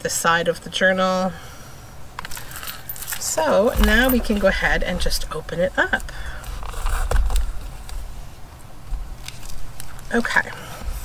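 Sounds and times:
rustling and handling bumps: 2.2 - 8.2.

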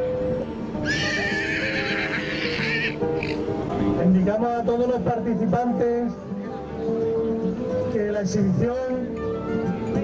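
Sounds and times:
horse neighing: 0.8 - 3.4.

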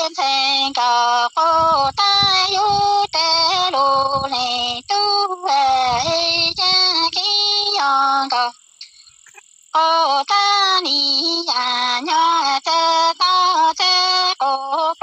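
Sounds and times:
woman singing unaccompanied: 0.0 - 8.7, 9.7 - 15.0.

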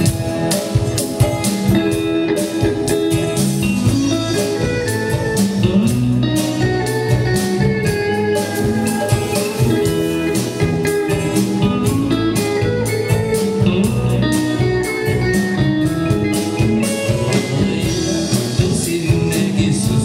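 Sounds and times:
drum kit steady beat: 0.0 - 20.0
electric guitar lines: 0.0 - 20.0.

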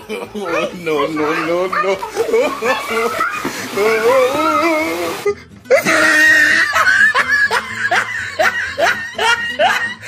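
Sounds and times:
person laughing: 5.0 - 10.0.

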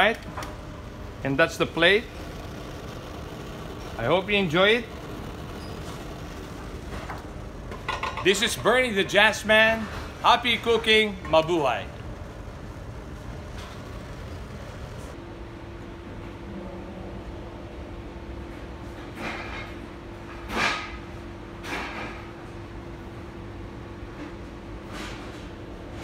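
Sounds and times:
kitchen background rumble: 0.0 - 15.2
steady hum: 0.0 - 18.4.

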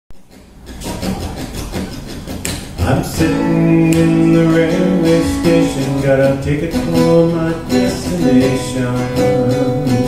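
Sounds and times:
acoustic guitar strumming: 0.1 - 10.0.

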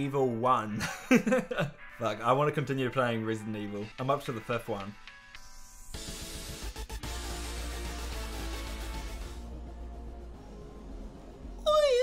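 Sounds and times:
high-pitched wavering voice: 11.6 - 12.0.

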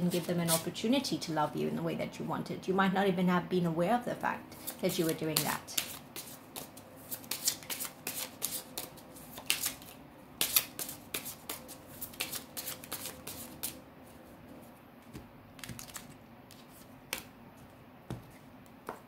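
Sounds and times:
cards being shuffled: 4.6 - 13.8, 15.1 - 17.3.

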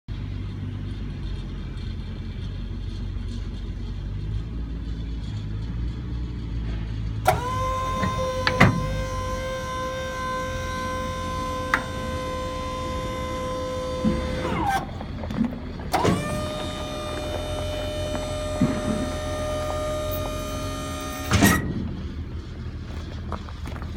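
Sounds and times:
hydraulic pump motor whine: 7.2 - 23.9.

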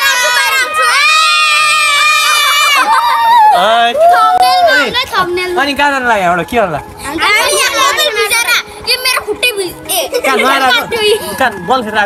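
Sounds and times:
children shouting and chattering: 0.0 - 5.9, 6.8 - 11.7.

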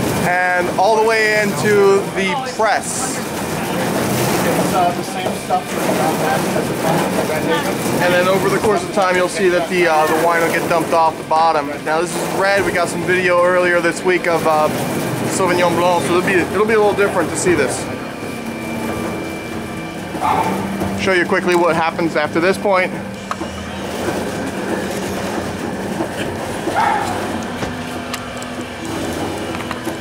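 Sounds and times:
conveyor motor running: 0.0 - 30.0.

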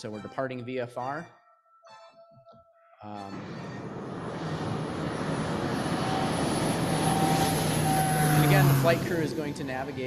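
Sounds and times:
small airplane engine at full power: 3.3 - 10.0.

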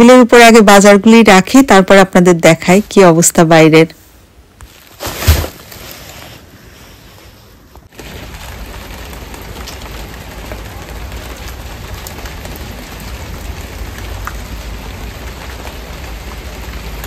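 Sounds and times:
steady rain: 7.5 - 17.0
raindrop ticks: 7.9 - 17.0.

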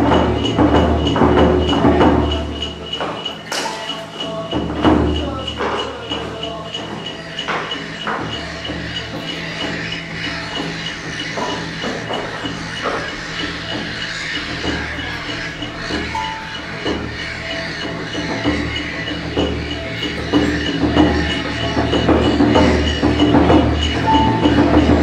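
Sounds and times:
ambient experimental music: 0.0 - 25.0
scattered knocks: 0.0 - 25.0
pulsing high tone: 16.1 - 17.8, 23.8 - 25.0.

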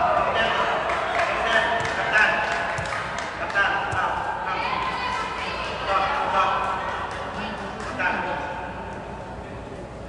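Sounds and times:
voices echoing indoors: 0.0 - 10.0
ball bouncing on court: 1.6 - 3.2, 3.8 - 4.2.

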